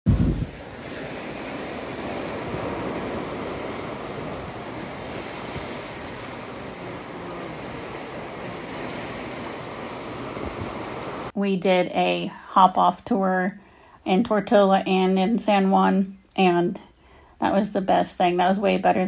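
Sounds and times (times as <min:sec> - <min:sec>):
surf washing over rocks: 0:00.1 - 0:11.3.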